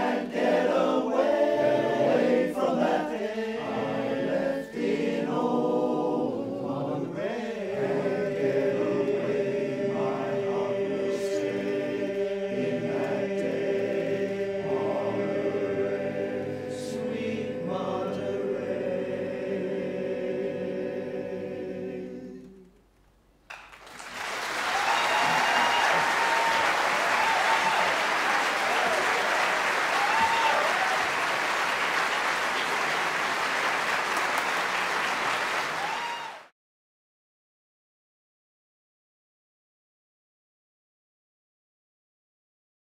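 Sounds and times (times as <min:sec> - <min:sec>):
male chorus singing a cappella: 0:00.0 - 0:22.7
audience applauding: 0:23.5 - 0:36.5.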